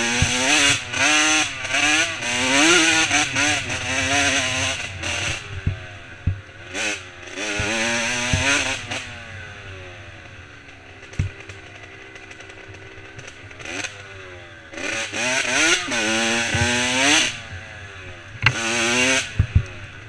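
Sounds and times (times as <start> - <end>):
dirt bike engine revving: 0.0 - 20.0
sharp knocks from bumps: 7.6 - 8.7, 11.1 - 11.6, 15.6 - 17.3, 18.4 - 18.6.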